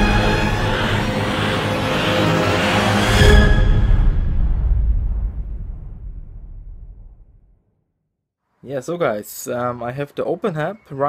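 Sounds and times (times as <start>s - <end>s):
deep cinematic boom: 0.0s - 7.8s.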